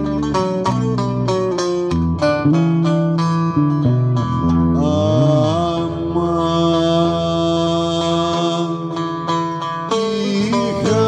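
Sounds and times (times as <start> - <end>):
plucked lute and guitar: 0.0 - 11.0
man singing a long note: 4.7 - 9.0, 9.9 - 11.0.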